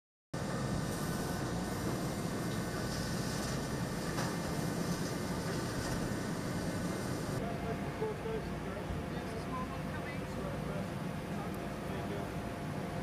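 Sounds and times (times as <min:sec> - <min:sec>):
machinery drone and hiss: 0:00.4 - 0:13.0.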